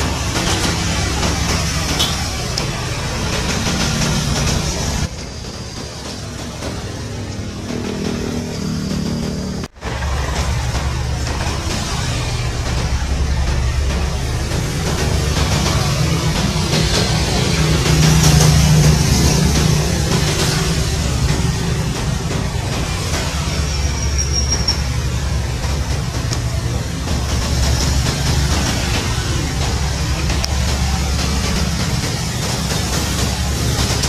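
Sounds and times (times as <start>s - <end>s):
helicopter rotors and turbine: 0.0s - 34.0s.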